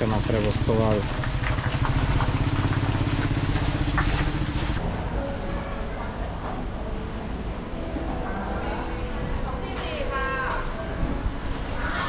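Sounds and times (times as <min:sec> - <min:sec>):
motorcycle engine pulsing: 0:00.0 - 0:04.8.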